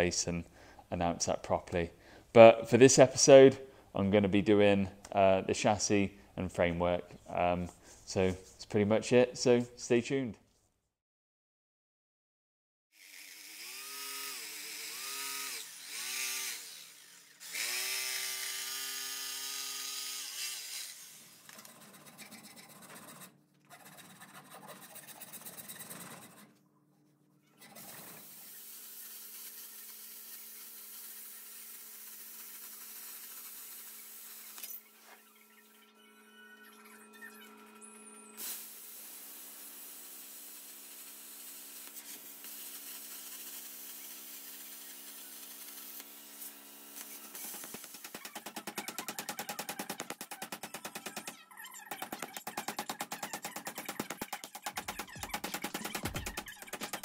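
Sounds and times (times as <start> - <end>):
electric jigsaw cutting wood: 13.0 - 21.6, 27.8 - 34.8, 38.4 - 51.3, 51.9 - 57.0.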